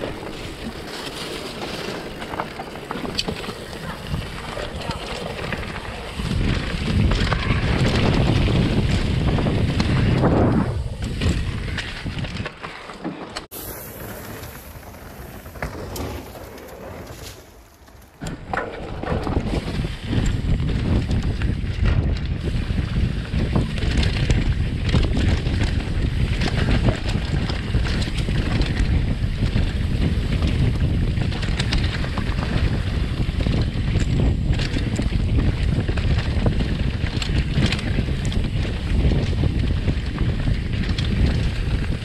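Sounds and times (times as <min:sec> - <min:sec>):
wind on microphone: 0:00.0 - 0:12.6, 0:18.3 - 0:42.0
bike clicks and rattles: 0:00.0 - 0:42.0
bike tyres rolling on dirt: 0:00.0 - 0:42.0.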